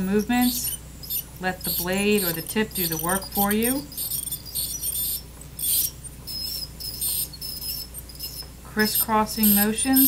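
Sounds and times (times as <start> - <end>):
ultrasonic scaler chirps and squeals: 0.0 - 10.0.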